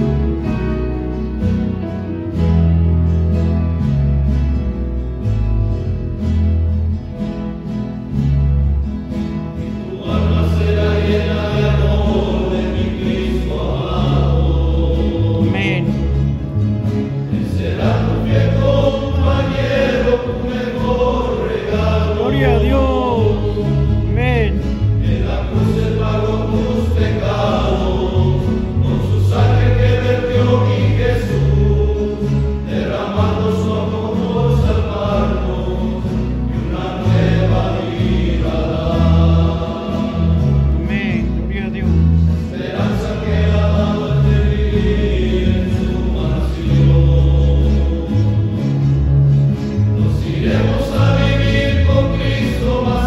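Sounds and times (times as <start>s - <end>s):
men's choir singing a hymn: 0.0s - 2.8s, 9.3s - 53.0s.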